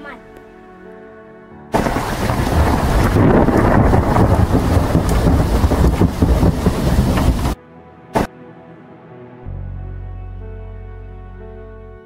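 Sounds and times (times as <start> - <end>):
rain hiss: 1.8 - 7.6
thunder rumble: 1.8 - 7.6.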